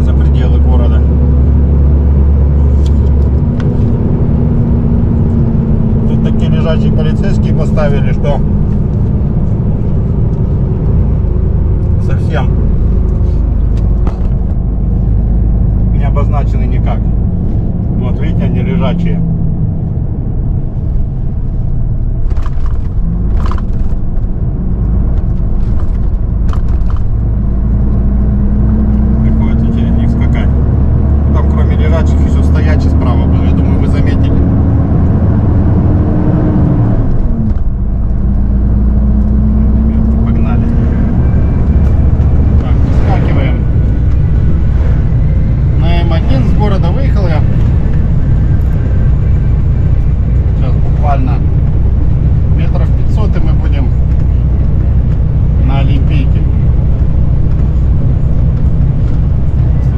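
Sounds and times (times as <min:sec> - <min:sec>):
truck diesel engine accelerating: 0:00.0 - 0:59.9.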